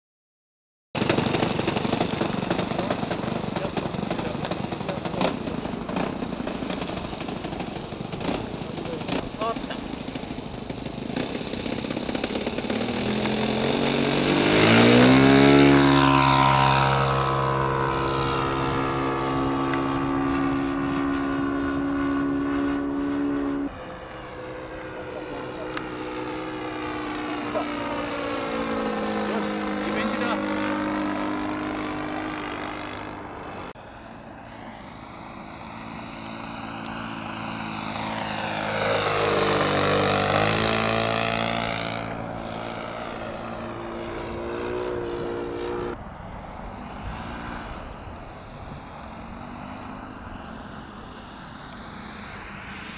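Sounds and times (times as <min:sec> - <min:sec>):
model plane engine and propeller: 0:01.0 - 0:52.9.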